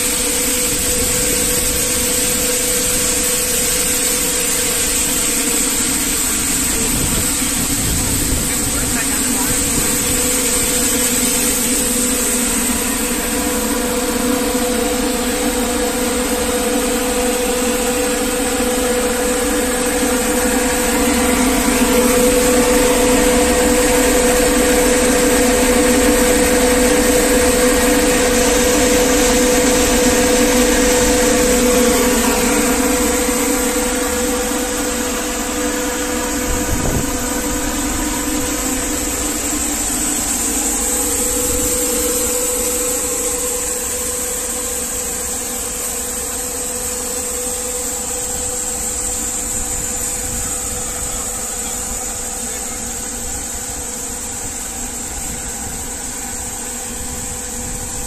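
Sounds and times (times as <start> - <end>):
cleaning machine humming: 0.0 - 58.0.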